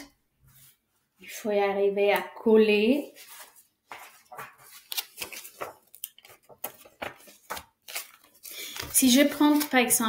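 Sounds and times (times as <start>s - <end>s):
paper sticker being peeled: 3.3s - 9.8s.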